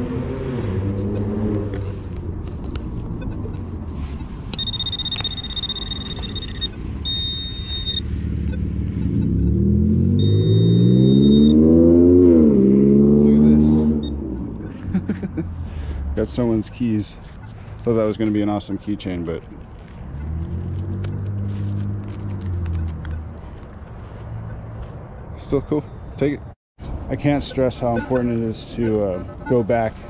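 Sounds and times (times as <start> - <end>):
car engine accelerating: 0.0 - 2.1, 8.0 - 15.4
low traffic rumble: 0.0 - 30.0
metal detector high-pitched tone: 3.2 - 11.7.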